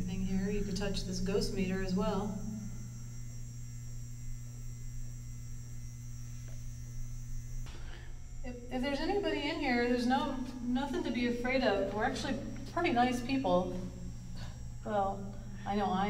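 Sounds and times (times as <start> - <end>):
woman speaking: 0.0 - 2.4, 8.5 - 13.8, 14.9 - 16.0
low electrical mains hum: 0.0 - 16.0.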